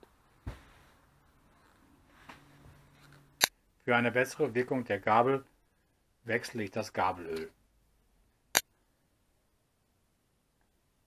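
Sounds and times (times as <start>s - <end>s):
man narrating: 3.9s - 5.5s, 6.2s - 7.5s.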